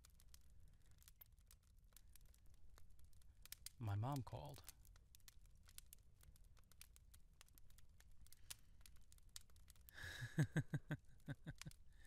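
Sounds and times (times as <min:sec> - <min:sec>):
faint clicks: 0:04.5 - 0:10.0
man laughing softly: 0:10.0 - 0:11.8.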